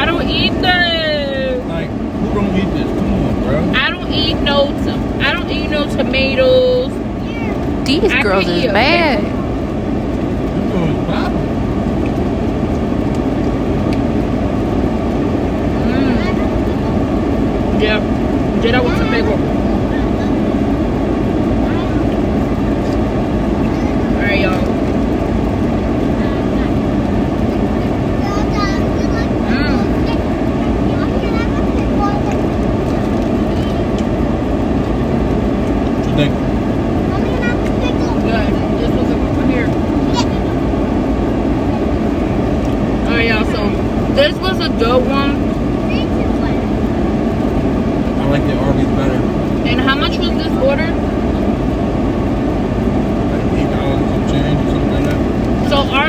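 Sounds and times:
car idling inside cabin: 0.0 - 56.0
quiet voices: 1.6 - 4.0, 7.2 - 9.4, 10.6 - 11.5, 15.7 - 17.1, 36.0 - 40.8, 48.0 - 51.6, 53.2 - 56.0.

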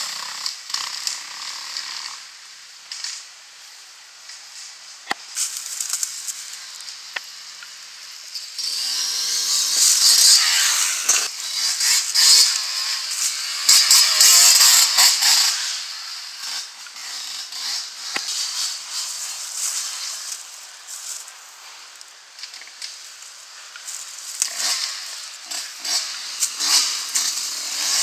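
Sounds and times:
dirt bike engine revving: 8.0 - 20.4, 22.4 - 28.0.

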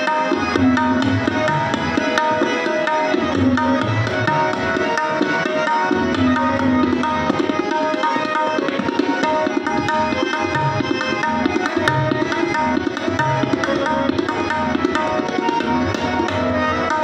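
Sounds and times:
harmonium playing chords: 0.0 - 17.0
tabla rhythm: 0.0 - 17.0.

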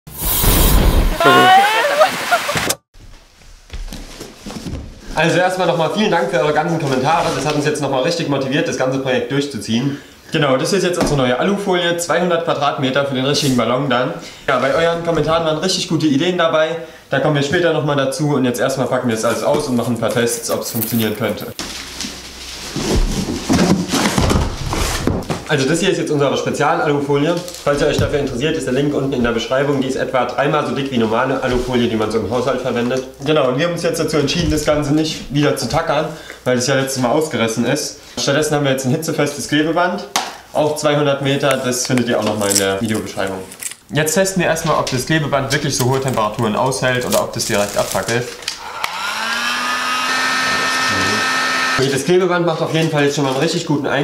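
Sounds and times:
cardboard boxes rustling: 20.8 - 25.5
foil rolls thumping on floor: 21.6 - 25.5
heat gun whine and air rush: 48.6 - 51.8.

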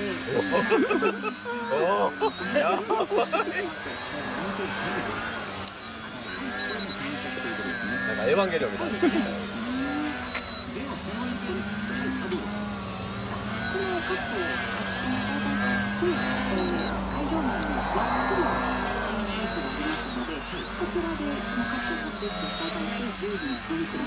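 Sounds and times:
model plane propellers whining: 0.0 - 24.0.

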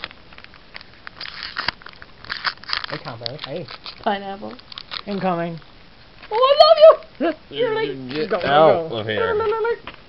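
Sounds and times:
trading cards rustling and clicking: 0.0 - 5.4.

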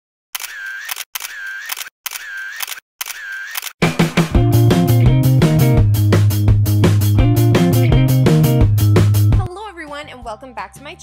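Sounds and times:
camera shutter click: 0.4 - 3.8
quick clicks: 0.4 - 3.8.

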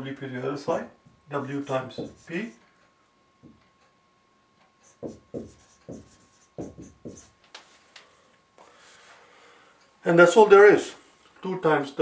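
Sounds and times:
marker writing on whiteboard: 1.9 - 2.6, 4.8 - 7.4.

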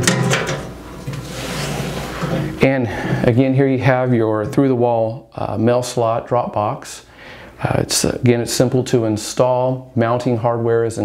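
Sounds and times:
metal box clunking and rattling: 0.0 - 0.8.

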